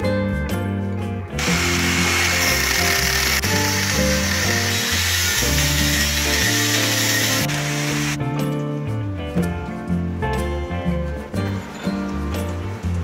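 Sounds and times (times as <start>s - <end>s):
angle grinder cutting metal: 1.4s - 8.2s.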